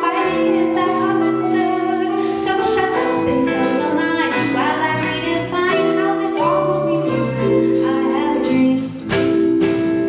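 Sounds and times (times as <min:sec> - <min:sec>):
woman singing into a microphone: 0:00.0 - 0:09.0
jazz band playing: 0:00.0 - 0:10.0.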